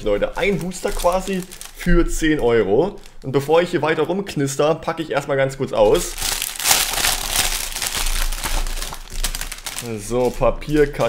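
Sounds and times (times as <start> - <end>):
wrapper crinkling: 0.0 - 3.9, 5.8 - 11.0.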